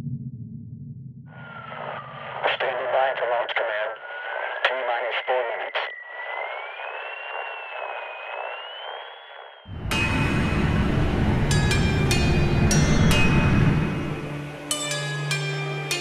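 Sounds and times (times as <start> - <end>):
radio static: 1.6 - 9.4
garbled radio voice chatter: 1.8 - 6.0
loud music: 9.7 - 16.0.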